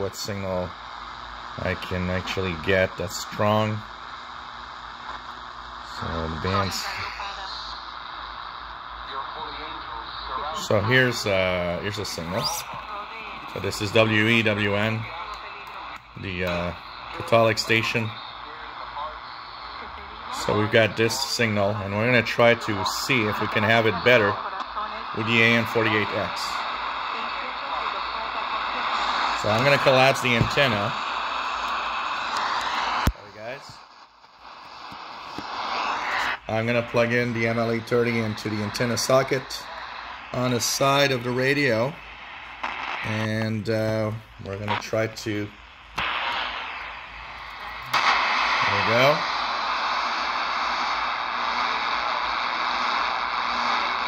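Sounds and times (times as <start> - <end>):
faint broken radio speech: 0.0 - 0.8, 1.4 - 4.2, 4.8 - 54.0
static hiss: 0.0 - 54.0.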